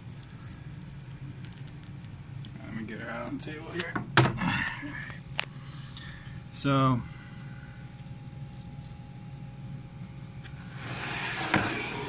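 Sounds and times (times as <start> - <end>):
water dripping: 0.0 - 3.0
aquarium equipment humming: 0.0 - 12.0.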